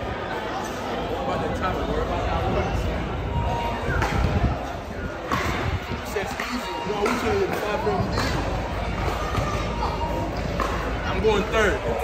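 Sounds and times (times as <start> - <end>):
children and people chattering: 0.0 - 12.0.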